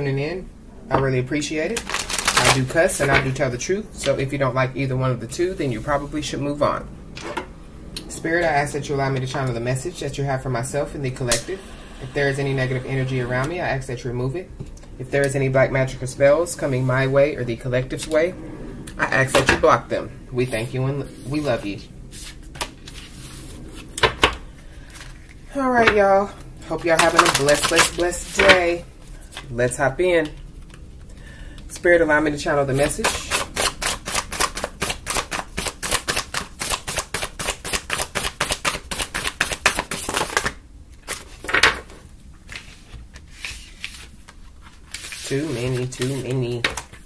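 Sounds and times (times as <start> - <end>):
cards being shuffled: 1.8 - 3.3, 26.8 - 28.6, 32.8 - 47.0.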